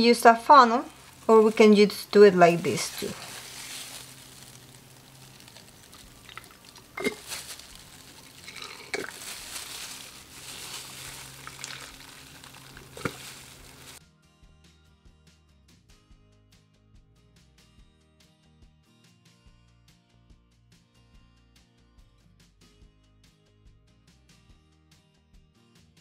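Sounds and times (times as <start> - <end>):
background music: 0.0 - 26.0
ink trickling into plastic bottle: 3.1 - 14.0
plastic bottles clicking together: 5.2 - 14.0.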